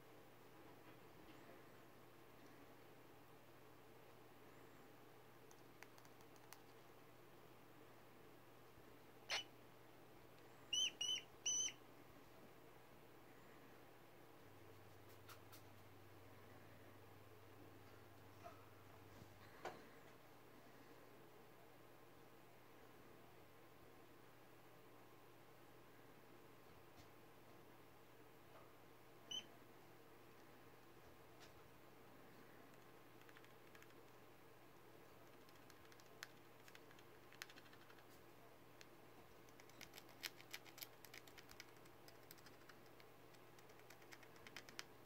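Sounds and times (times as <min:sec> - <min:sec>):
baby rat squeaking: 0:09.3 - 0:09.5, 0:10.7 - 0:11.8, 0:29.3 - 0:29.5
rat squeaking: 0:09.3 - 0:09.5, 0:10.7 - 0:11.8, 0:29.3 - 0:29.5, 0:39.6 - 0:42.6.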